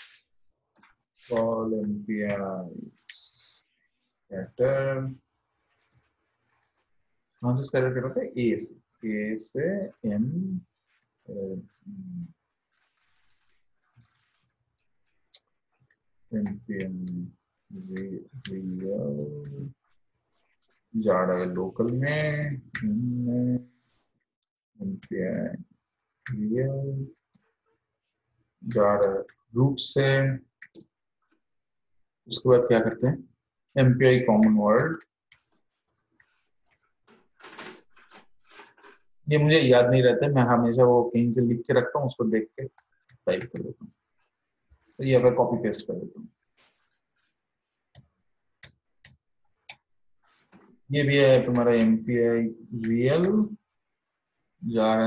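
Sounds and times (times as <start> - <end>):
man mumbling: 1.3 - 2.8, 7.4 - 10.6, 17.8 - 19.7, 21.0 - 23.6, 24.8 - 25.6, 26.3 - 27.1, 28.7 - 30.3, 33.8 - 35.0, 43.3 - 43.7, 54.7 - 55.0.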